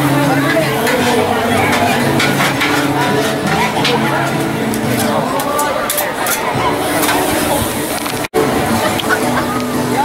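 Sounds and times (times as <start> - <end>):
background voices: 0.0 - 10.0
metal spatula scraping griddle: 0.3 - 7.4.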